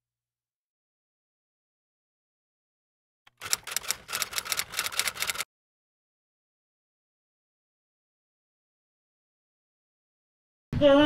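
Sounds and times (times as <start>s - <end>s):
rapid keystroke clicks: 3.3s - 5.4s.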